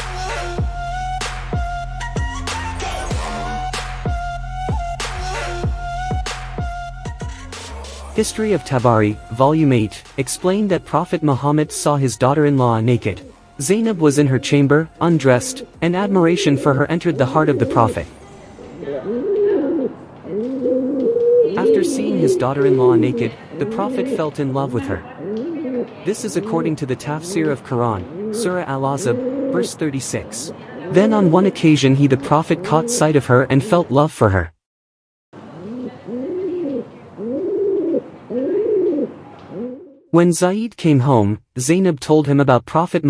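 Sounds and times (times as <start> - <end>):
pigeons cooing: 13.0 - 13.4, 14.1 - 33.8, 35.5 - 40.0.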